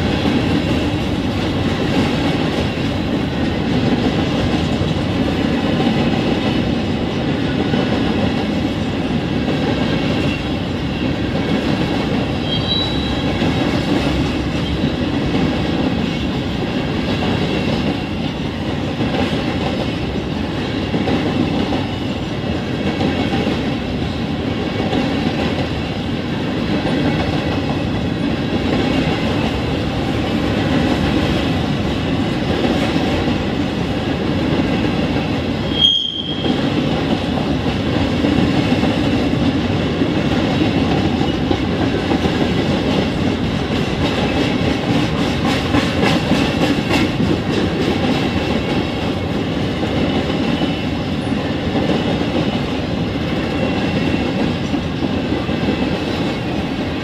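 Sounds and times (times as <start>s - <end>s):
train wheels clattering over rails: 0.0s - 57.0s
high wheel squeals: 12.4s - 13.3s, 35.7s - 36.6s.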